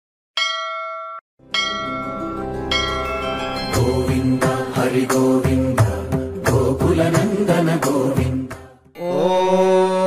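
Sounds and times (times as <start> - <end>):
bell ringing: 0.4 - 4.8
music: 1.4 - 10.0.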